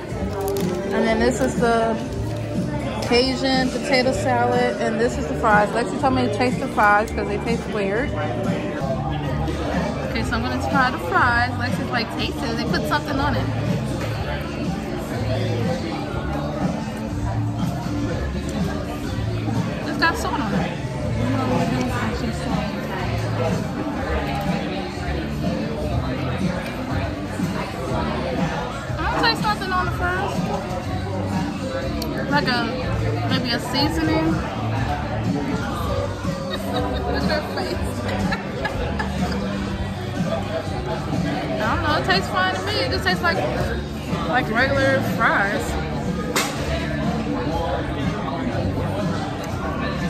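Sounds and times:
background music: 0.0 - 50.0
diners talking: 0.0 - 50.0
restaurant hum: 0.0 - 50.0.

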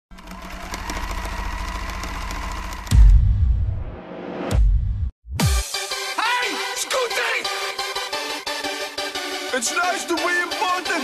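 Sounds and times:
fast mechanical rattle: 0.1 - 3.1.

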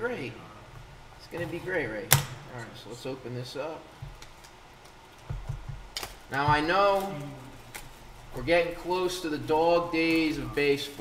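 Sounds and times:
soft low knocks: 4.0 - 4.2, 5.2 - 7.0.

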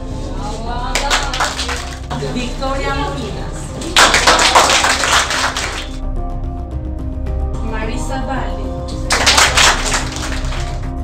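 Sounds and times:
children applauding: 1.0 - 2.1, 4.0 - 6.0, 9.0 - 10.9.

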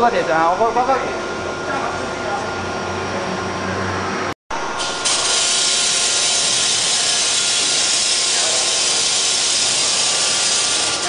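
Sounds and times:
machine hissing with faint whine: 4.7 - 11.0.

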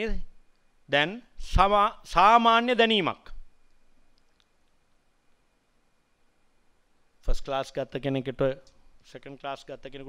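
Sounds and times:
man's amplified voice: 0.9 - 3.4
faint clicks: 3.6 - 4.8.

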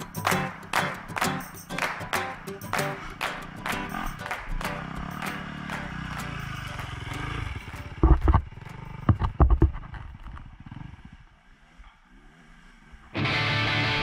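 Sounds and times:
motorcycle engine passing by: 2.7 - 14.0.

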